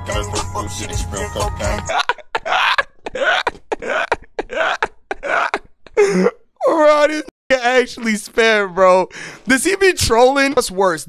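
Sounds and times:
man wheezing laughter: 1.6 - 6.4.

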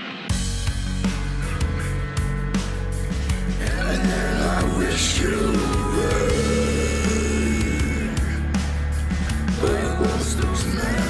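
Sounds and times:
instrumental rock music: 0.0 - 11.0.

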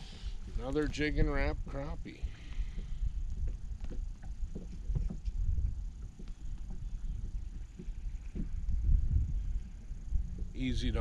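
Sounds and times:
wind and water rumble: 0.0 - 11.0.

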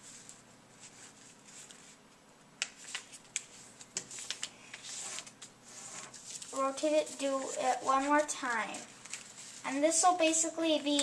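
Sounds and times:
paper rustling: 0.0 - 2.0, 2.6 - 11.0
paper crackling: 0.1 - 2.0, 2.6 - 11.0.

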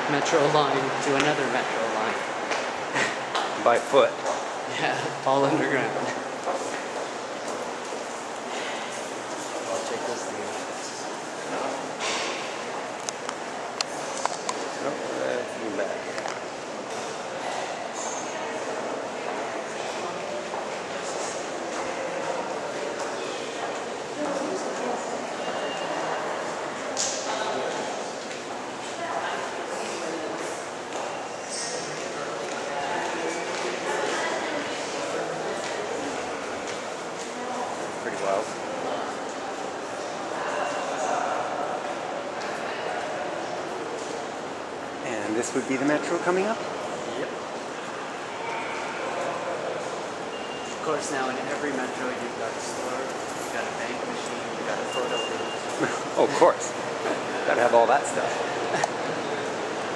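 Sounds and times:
indistinct crowd chatter: 0.0 - 59.9
distant indistinct voices echoing: 46.6 - 57.5.

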